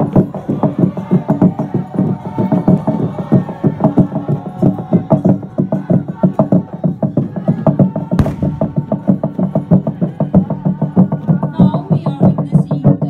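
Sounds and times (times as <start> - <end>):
log drum beaten with wooden beaters: 4.0 - 13.0.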